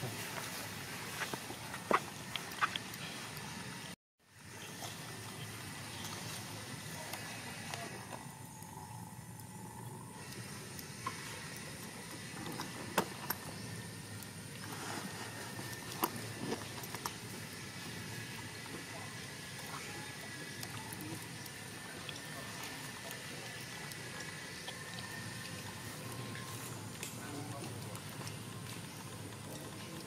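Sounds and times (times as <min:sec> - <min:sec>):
outdoor background hiss: 0:00.0 - 0:30.0.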